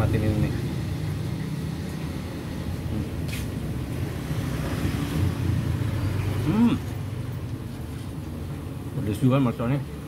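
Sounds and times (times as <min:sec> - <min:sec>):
low rumble of road traffic: 0:00.0 - 0:10.0.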